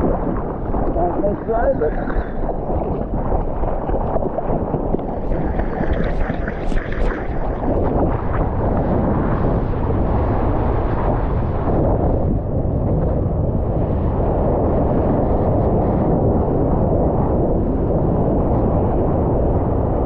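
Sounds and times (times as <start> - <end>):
water rushing and splashing: 0.0 - 12.0
wind buffeting microphone: 0.0 - 20.0.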